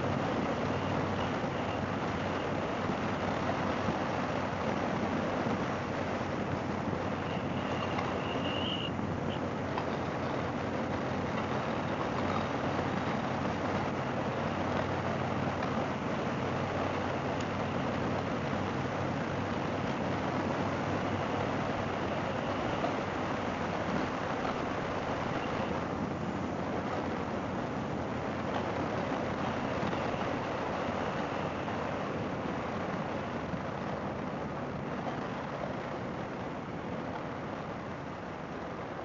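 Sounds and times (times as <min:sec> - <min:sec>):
motorcycle engine cruising: 0:00.0 - 0:39.0
wind and road noise: 0:00.0 - 0:39.0.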